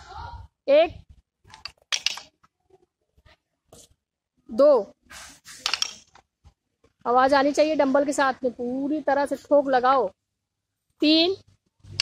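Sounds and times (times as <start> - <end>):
wooden dumbbells clacking: 1.5 - 2.4, 5.6 - 6.2.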